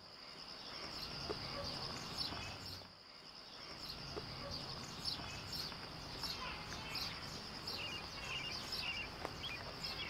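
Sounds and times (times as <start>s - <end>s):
faint outdoor hiss: 0.0s - 10.0s
insects chirring: 0.0s - 10.0s.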